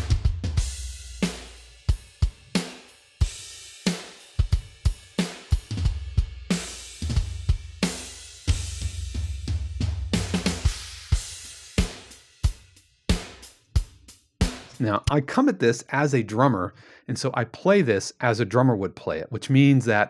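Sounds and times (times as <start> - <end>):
rock drum beat: 0.0 - 15.2.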